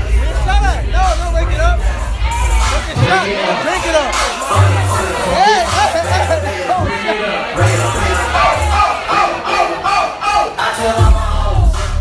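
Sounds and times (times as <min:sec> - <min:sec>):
party music with heavy bass: 0:00.0 - 0:12.0
group of voices shouting: 0:02.1 - 0:11.0.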